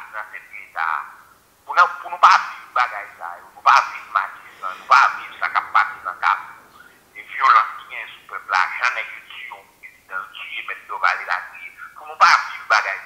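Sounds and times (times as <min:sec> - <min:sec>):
person talking: 0:00.0 - 0:13.0.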